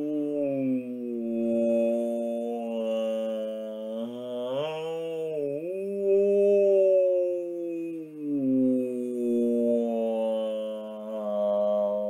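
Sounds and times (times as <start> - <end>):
man imitating whale song: 0.0 - 12.0.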